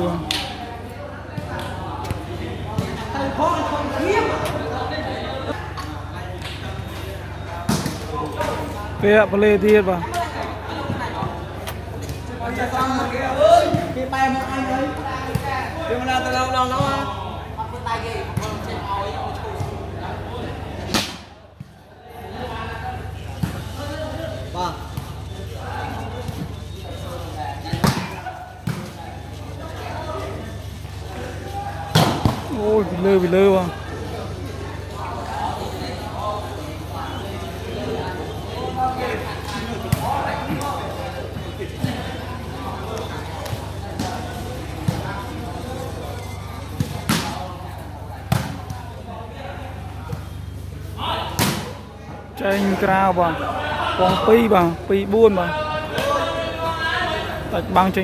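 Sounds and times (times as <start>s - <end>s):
spectators chatting: 0.0s - 58.0s
hand slapping volleyball: 0.2s - 0.6s
volleyball hits: 31.8s - 32.5s, 46.7s - 47.5s, 51.2s - 51.8s.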